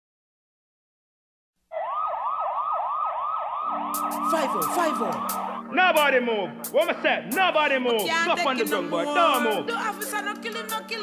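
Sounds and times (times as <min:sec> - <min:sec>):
police siren yelping: 0:01.7 - 0:07.3
low steady synth tone: 0:03.6 - 0:07.3.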